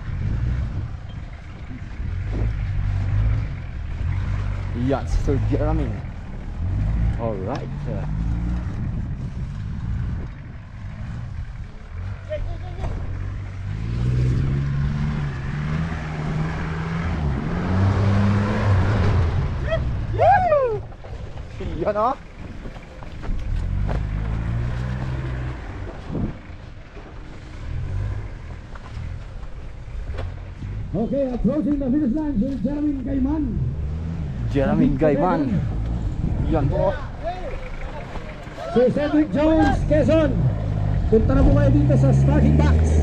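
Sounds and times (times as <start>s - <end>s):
tyres churning through loose dirt: 0.0s - 43.0s
van engine revving: 0.0s - 43.0s
person shouting: 19.6s - 20.9s, 38.6s - 39.8s.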